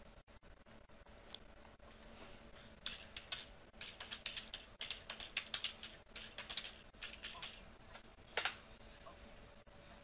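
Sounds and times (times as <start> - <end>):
computer keyboard typing: 2.8 - 7.6, 8.3 - 8.6.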